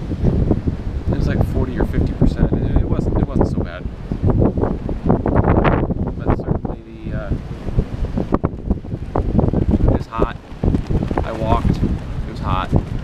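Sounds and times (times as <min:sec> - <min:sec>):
wind buffeting microphone: 0:00.0 - 0:13.0
background voices: 0:09.8 - 0:10.5, 0:11.1 - 0:13.0.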